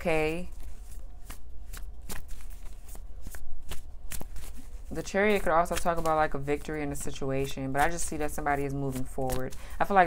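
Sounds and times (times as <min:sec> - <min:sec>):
cards being shuffled: 0:00.4 - 0:10.0.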